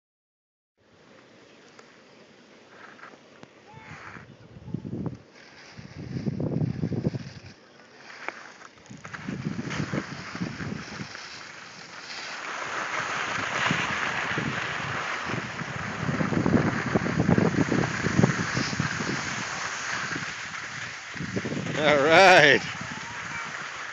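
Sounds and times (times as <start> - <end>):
wind buffeting microphone: 4.2 - 7.6, 8.9 - 11.4, 13.0 - 23.9
scraping over packed snow: 5.3 - 23.9.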